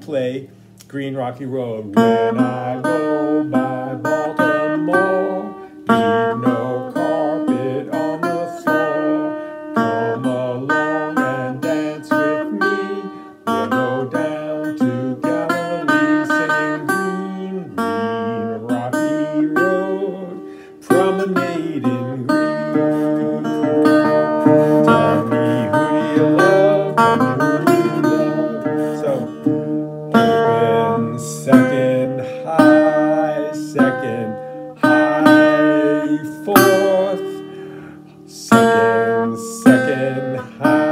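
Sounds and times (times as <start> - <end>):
man singing: 1.3 - 40.9
resonator guitar picking: 1.6 - 40.9.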